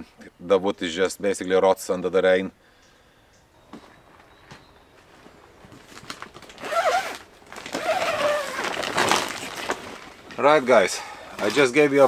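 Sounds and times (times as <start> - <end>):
plastic film rustling and crinkling: 5.0 - 12.0.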